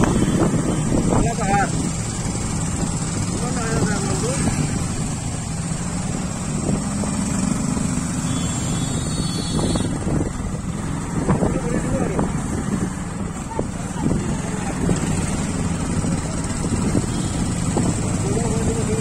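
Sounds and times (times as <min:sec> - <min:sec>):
motorcycle engine running: 0:00.0 - 0:19.0
road noise: 0:00.0 - 0:19.0.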